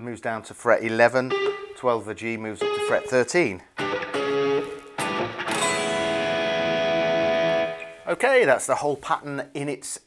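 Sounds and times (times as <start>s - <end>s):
electric guitar picking: 1.3s - 8.0s.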